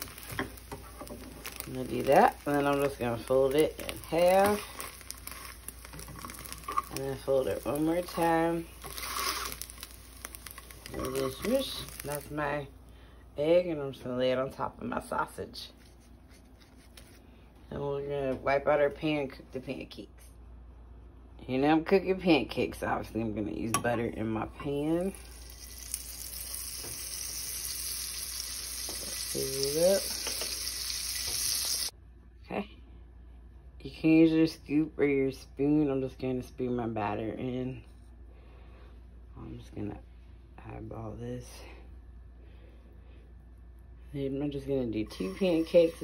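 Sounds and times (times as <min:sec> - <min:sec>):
egg sizzling in a frying pan: 0:00.0 - 0:12.7, 0:24.8 - 0:32.0, 0:45.0 - 0:46.0.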